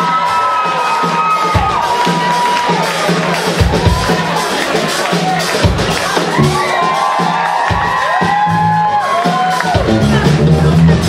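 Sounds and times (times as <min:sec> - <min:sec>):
crowd cheering: 0:00.0 - 0:11.0
live funk band playing: 0:00.0 - 0:11.0.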